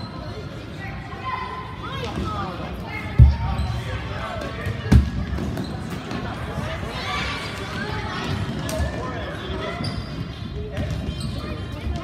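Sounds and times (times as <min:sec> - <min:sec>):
voices chattering in a hall: 0:00.0 - 0:12.0.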